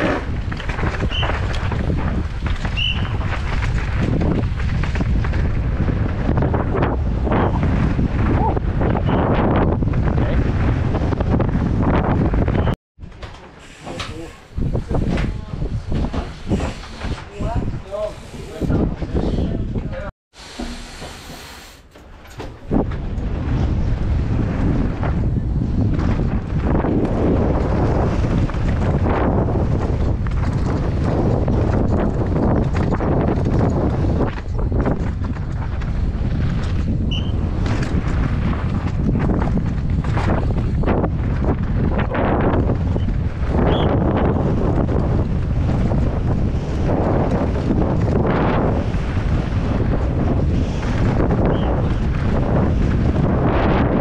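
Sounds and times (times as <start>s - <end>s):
wind rushing on microphone: 0.0s - 13.2s, 13.8s - 20.1s, 22.4s - 54.0s
bike rattling over rocks: 0.0s - 13.5s, 22.0s - 54.0s.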